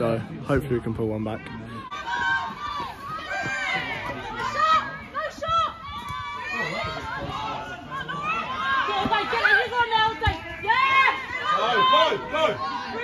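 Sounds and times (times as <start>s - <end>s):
low spectator chatter: 0.0s - 13.0s.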